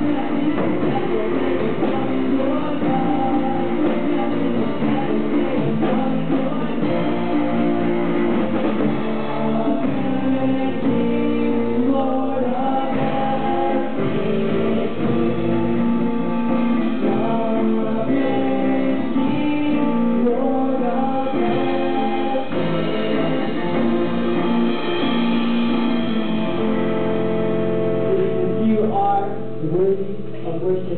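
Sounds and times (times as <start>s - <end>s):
drum kit: 0.0s - 30.9s
electric guitar chords: 0.0s - 30.9s
live band playing: 0.0s - 30.9s.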